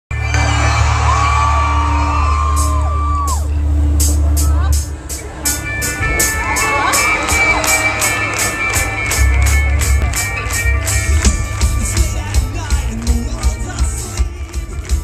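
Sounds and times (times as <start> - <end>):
live rock band playing: 0.1 - 15.0
crowd whooping: 0.2 - 4.8, 5.8 - 14.3
heavy sustained bass: 0.2 - 6.9
steady cymbal beat: 2.4 - 15.0.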